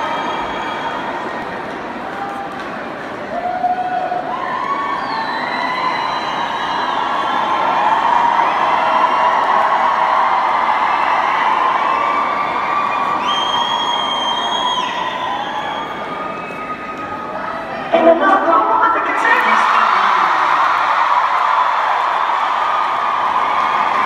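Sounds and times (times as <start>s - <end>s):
crowd cheering and screaming: 0.0s - 24.0s.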